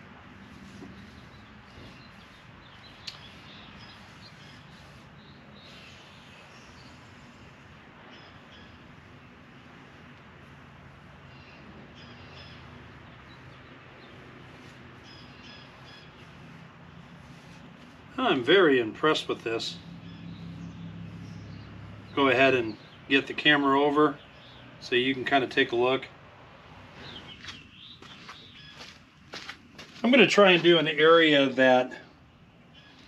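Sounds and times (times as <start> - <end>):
birds chirping: 0.0 - 33.0.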